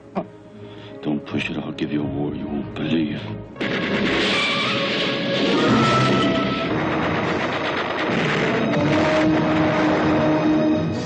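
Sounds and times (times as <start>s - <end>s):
orchestral score: 0.0s - 11.0s
rapid gunfire: 3.6s - 10.7s
crashes and explosions: 3.6s - 11.0s.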